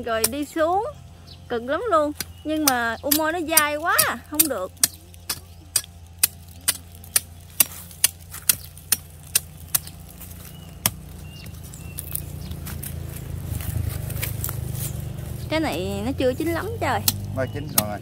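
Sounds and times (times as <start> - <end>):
low rumble: 0.0 - 18.0
machete knocking on dry pod: 2.2 - 12.2, 17.0 - 18.0.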